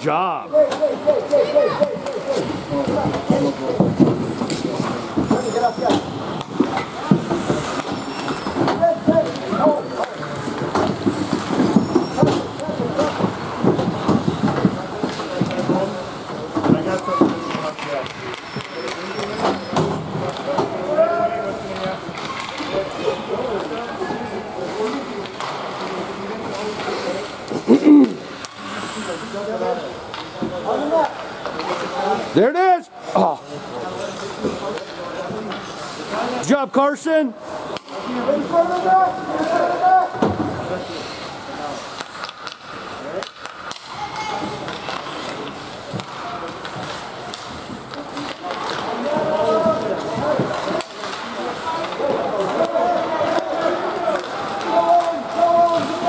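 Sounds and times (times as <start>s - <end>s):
overlapping voices and shouts: 0.5s - 3.0s, 51.7s - 56.0s.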